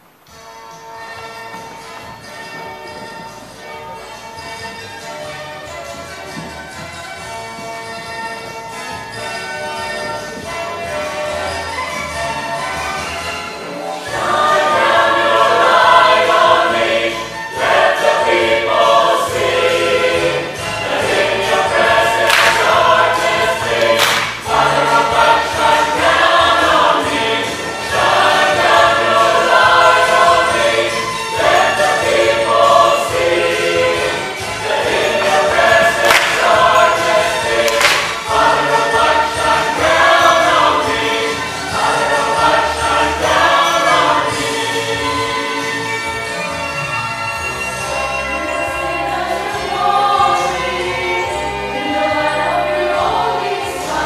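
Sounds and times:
church choir singing: 0:09.4 - 0:54.0
sharp percussive hits: 0:22.2 - 0:25.0, 0:34.6 - 0:38.8.

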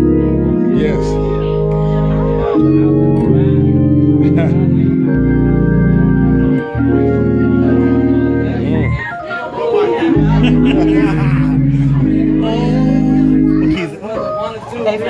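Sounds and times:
gospel organ playing chords: 0:00.0 - 0:14.6.

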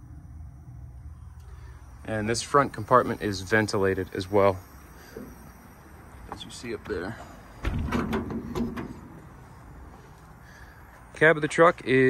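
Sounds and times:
metal door latch clicking: 0:07.6 - 0:09.2.

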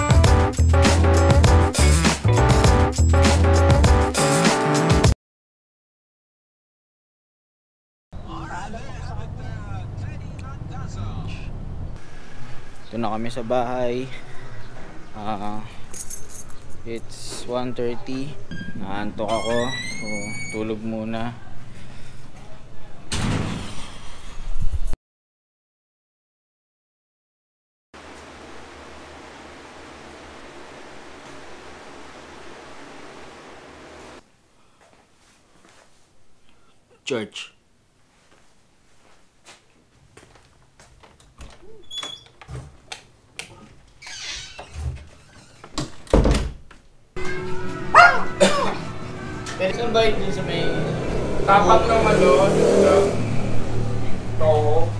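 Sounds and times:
door opening with loud clatter: 0:18.5 - 0:20.8, 0:41.0 - 0:43.0, 0:43.9 - 0:46.8.

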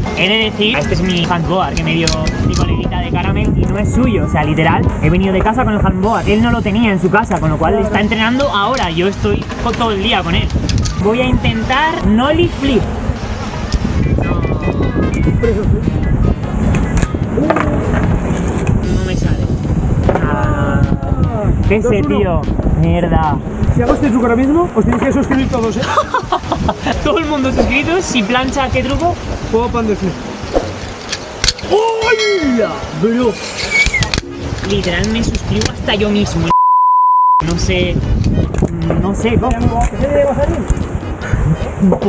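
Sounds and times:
music: 0:00.0 - 0:30.8, 0:34.2 - 0:36.5, 0:37.4 - 0:42.0
long vocal exclamation: 0:20.2 - 0:21.5, 0:31.7 - 0:32.8.

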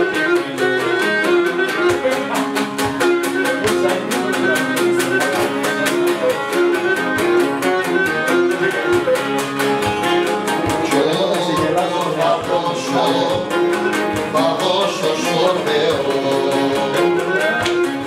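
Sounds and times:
bowed lyra melody: 0:00.0 - 0:18.0
mandolin and lute plucking: 0:00.0 - 0:18.0.

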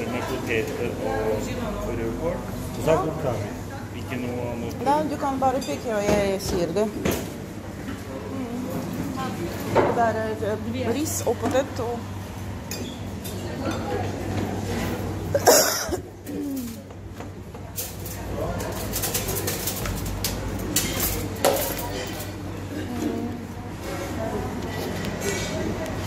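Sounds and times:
murmur of voices: 0:00.0 - 0:26.0
dishes and cutlery clinking: 0:12.6 - 0:14.2, 0:15.4 - 0:23.2.

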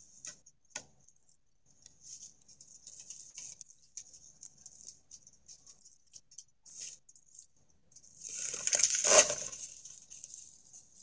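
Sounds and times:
light scratching and patter: 0:00.0 - 0:11.0
scraping rustle: 0:08.1 - 0:11.0.

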